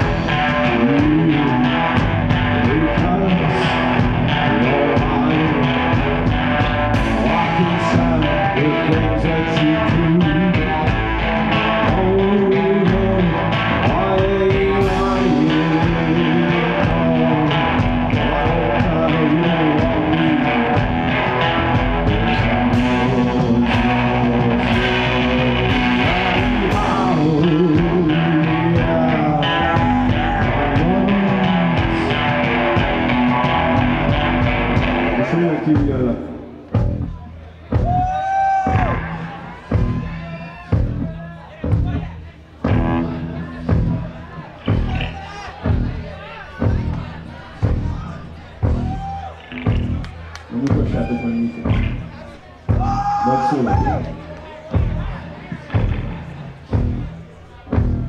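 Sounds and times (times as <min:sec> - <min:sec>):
man singing: 0:00.0 - 0:36.5, 0:50.5 - 0:54.2
rock band playing: 0:00.0 - 0:58.0.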